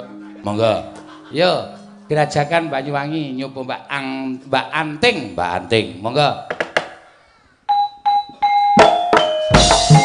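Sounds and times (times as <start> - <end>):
gamelan ensemble playing: 0.0 - 3.4, 8.4 - 10.0.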